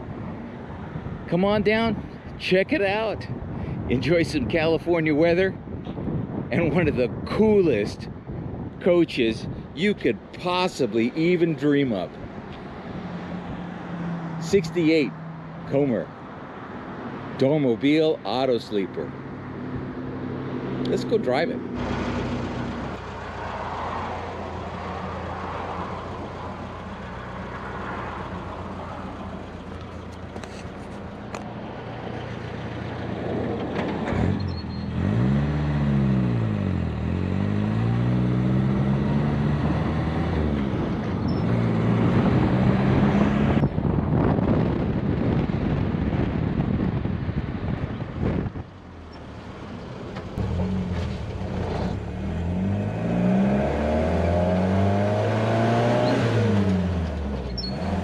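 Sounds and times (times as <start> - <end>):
distant road traffic: 0.0 - 58.0
van engine accelerating: 21.6 - 58.0.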